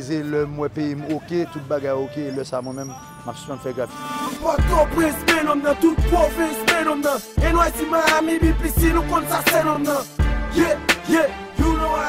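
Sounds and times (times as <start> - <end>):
rapping over a beat: 0.0 - 12.0
deep bass kick: 7.4 - 7.8.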